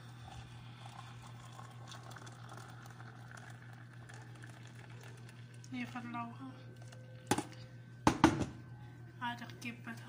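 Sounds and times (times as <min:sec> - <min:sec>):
water pouring into a cup: 0:00.0 - 0:07.1.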